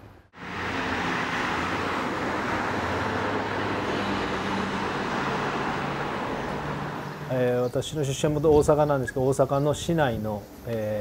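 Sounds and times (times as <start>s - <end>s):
city traffic noise: 0.0s - 10.8s.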